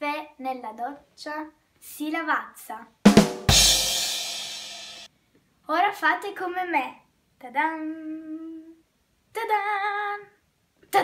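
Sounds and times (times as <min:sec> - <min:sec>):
girl singing: 0:07.5 - 0:08.8, 0:09.4 - 0:10.4.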